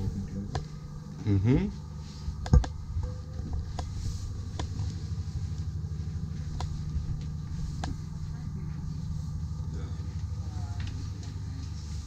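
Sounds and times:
low machinery rumble: 0:00.0 - 0:12.0.

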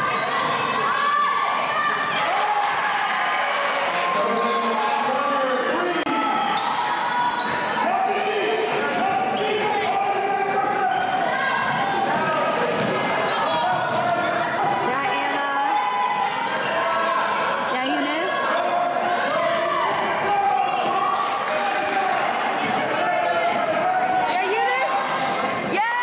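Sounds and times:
voices echoing in hall: 0:00.0 - 0:26.0.

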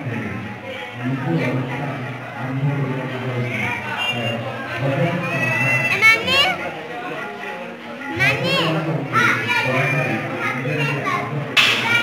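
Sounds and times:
adult chatter: 0:00.0 - 0:12.0
children shrieking: 0:05.2 - 0:06.6.

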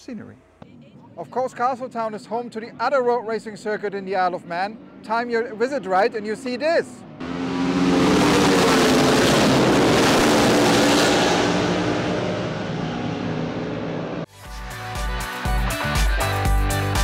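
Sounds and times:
racing motorcycles passing: 0:00.9 - 0:14.3
music with a beat: 0:14.3 - 0:17.0.

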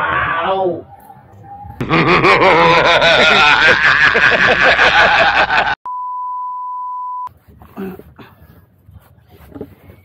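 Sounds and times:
people laughing loudly: 0:01.8 - 0:05.8
steady test tone beep: 0:05.9 - 0:07.3.

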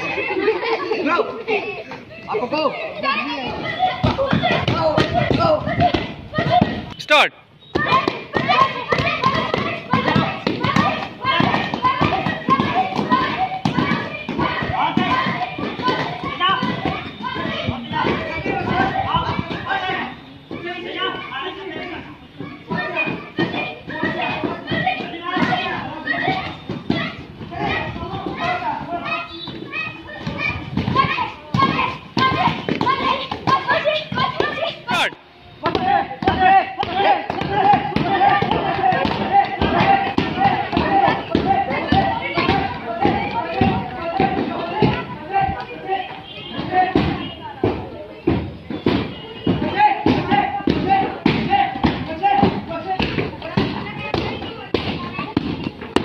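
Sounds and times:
children shouting: 0:00.0 - 0:06.9, 0:07.7 - 0:56.0
voices: 0:00.0 - 0:56.0.

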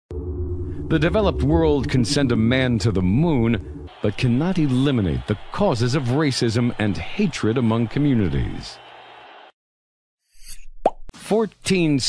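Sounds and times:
cartoon pop blip: 0:10.8 - 0:11.0.

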